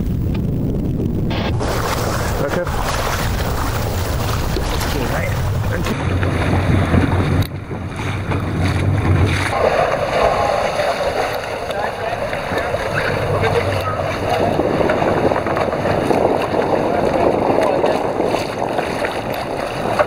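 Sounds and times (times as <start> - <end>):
boat engine hum: 0.0 - 20.0
water washing around boat hull: 0.0 - 20.0
wind buffeting microphone: 0.0 - 20.0.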